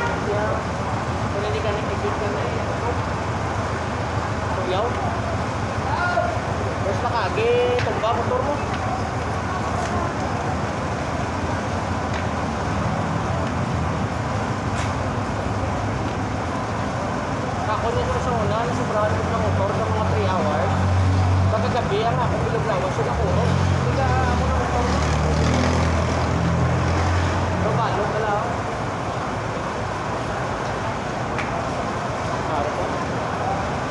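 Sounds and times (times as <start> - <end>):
street traffic noise: 0.0 - 33.9.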